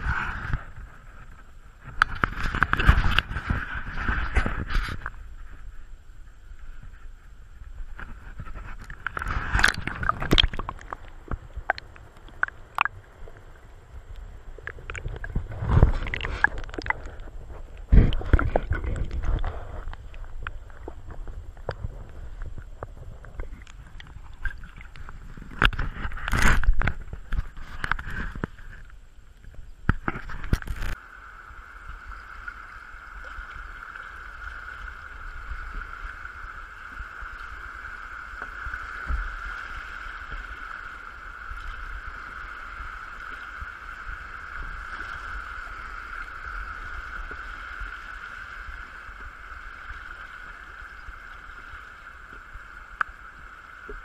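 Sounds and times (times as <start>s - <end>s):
water splashing and knocking: 9.2s - 12.9s, 14.9s - 17.1s, 17.9s - 19.8s.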